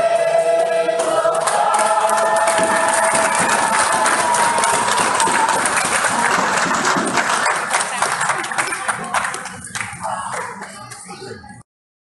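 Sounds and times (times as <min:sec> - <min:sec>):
people clapping: 0:01.0 - 0:11.5
voices: 0:07.2 - 0:11.6.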